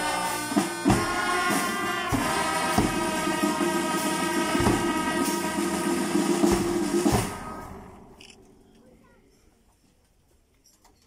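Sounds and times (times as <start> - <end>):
brass band sustained chord: 0.0 - 8.2.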